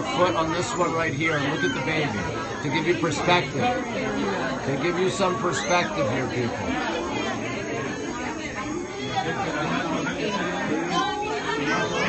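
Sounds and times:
overlapping voices chatter: 0.0s - 12.0s.

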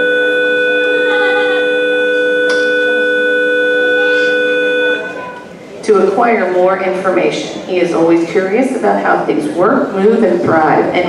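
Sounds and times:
microphone feedback whistle: 0.0s - 5.4s
faint speech: 4.0s - 7.7s.

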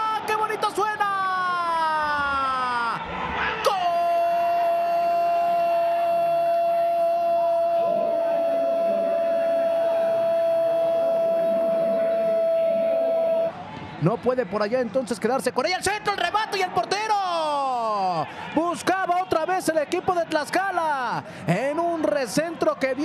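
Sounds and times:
commentator's long goal shout: 3.6s - 13.5s.

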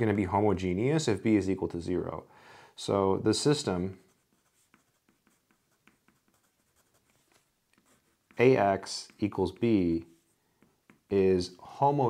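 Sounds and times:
pencil scratching on paper: 3.9s - 11.1s.

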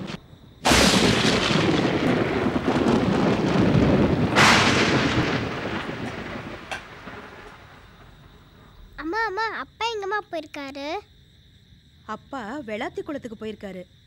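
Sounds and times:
thunder claps rolling: 0.0s - 8.8s.

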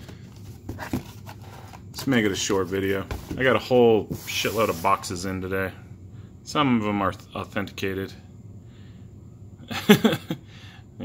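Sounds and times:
paper envelope handling: 0.0s - 3.4s.

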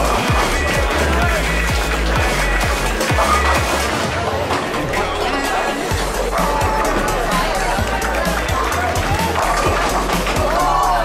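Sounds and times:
music with booming bass beat: 0.0s - 4.1s, 5.0s - 11.0s.

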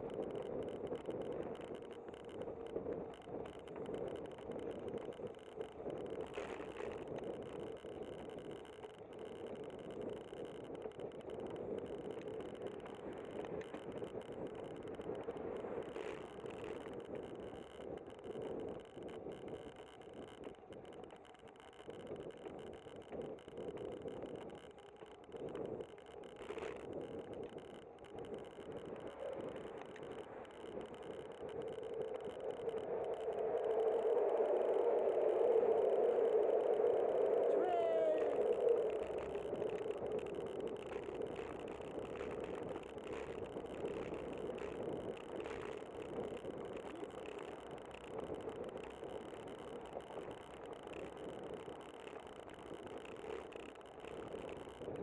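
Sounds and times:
wind: 0.0s - 55.0s.

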